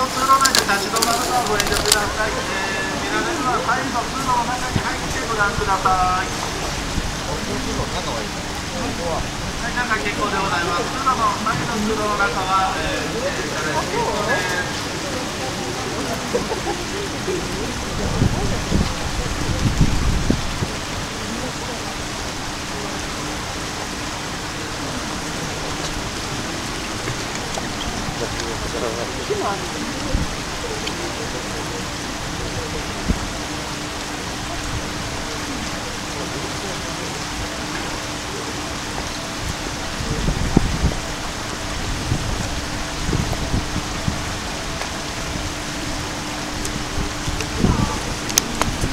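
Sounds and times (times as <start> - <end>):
low rumbles: 0.0 - 48.9
river water spilling over weir: 0.0 - 48.9.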